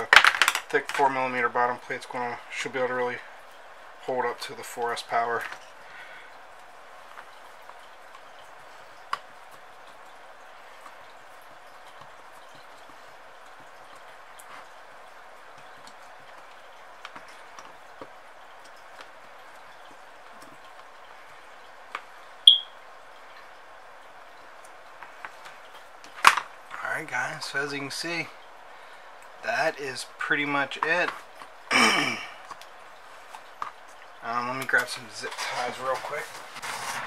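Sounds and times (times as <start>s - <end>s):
background hiss: 0.0s - 37.0s
short high ping: 22.5s - 22.8s.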